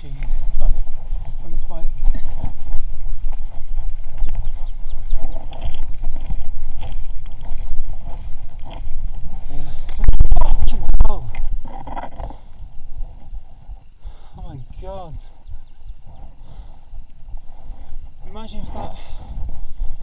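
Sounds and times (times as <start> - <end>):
bike tyres on loose stones: 0.0 - 20.0
wind rumble on microphone: 0.0 - 20.0.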